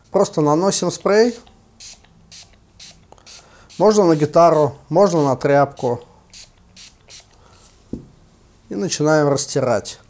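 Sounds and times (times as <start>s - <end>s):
spray bottle spritzes: 1.3s - 7.8s
short thump: 7.9s - 8.2s.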